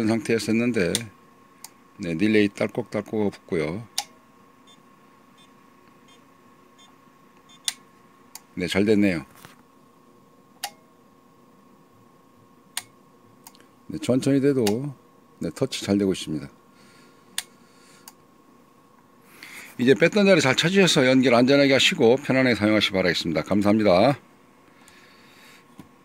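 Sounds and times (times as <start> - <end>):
faint steady whine: 0.0 - 26.0.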